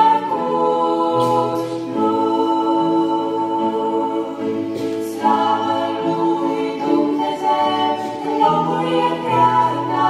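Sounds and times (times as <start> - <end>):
girls' choir singing: 0.0 - 10.0
women singing in harmony: 0.0 - 10.0.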